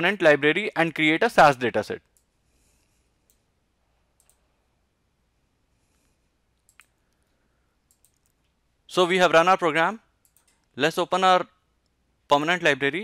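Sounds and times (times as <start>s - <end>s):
faint computer mouse clicks: 4.2s - 4.4s, 6.0s - 8.5s.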